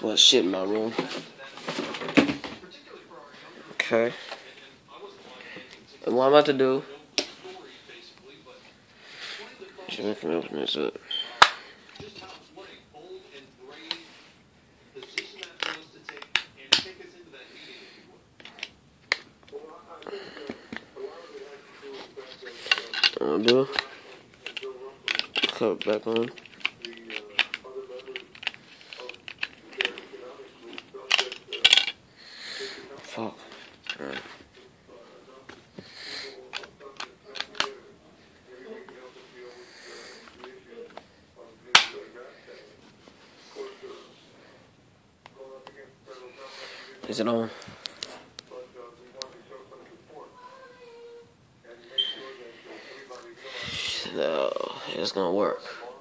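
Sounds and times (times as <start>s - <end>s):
phone handling rustling: 21.9s - 32.0s, 36.4s - 37.8s.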